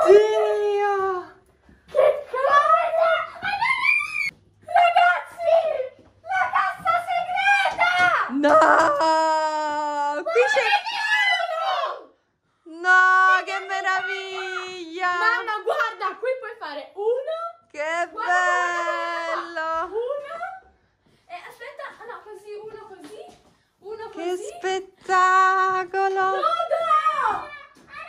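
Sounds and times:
girls shrieking and exclaiming: 0:02.0 - 0:12.2, 0:12.8 - 0:16.2, 0:18.0 - 0:20.7, 0:26.2 - 0:28.0.

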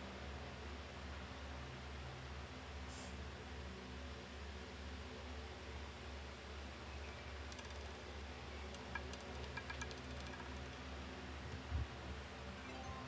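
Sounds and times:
low hum and hiss: 0:00.0 - 0:13.0
roulette ball rattling clicks: 0:07.3 - 0:11.0.

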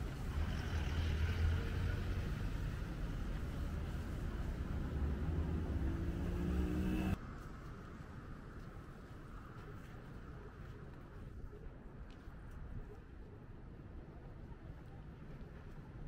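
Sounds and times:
car engine humming: 0:00.0 - 0:07.2
distant city traffic: 0:00.0 - 0:07.2.

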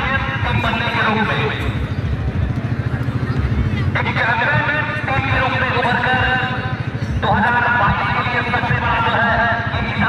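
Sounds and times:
crowd murmur: 0:00.0 - 0:10.0
low microphone rumble: 0:00.0 - 0:10.0.

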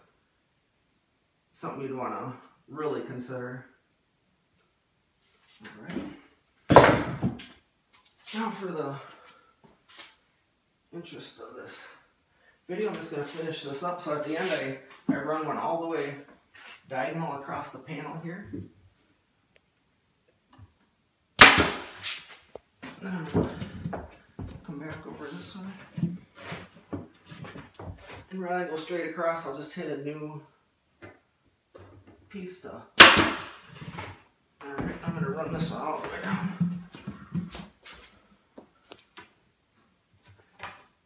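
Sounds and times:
staple gun firing: 0:21.4 - 0:21.9, 0:33.0 - 0:33.5.

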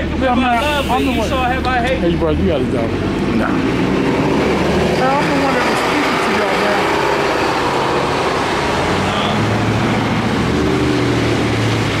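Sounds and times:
city street traffic: 0:00.0 - 0:12.0
vehicle engine humming: 0:00.0 - 0:12.0.

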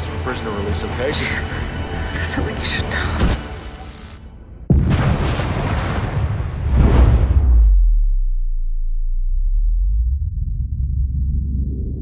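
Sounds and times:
explosion rushing noise: 0:04.7 - 0:08.8
deep rumble: 0:04.7 - 0:12.0.

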